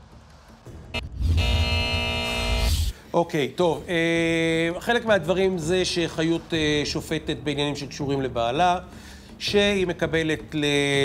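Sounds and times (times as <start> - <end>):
electronic chord with deep bass: 0.8 - 2.9.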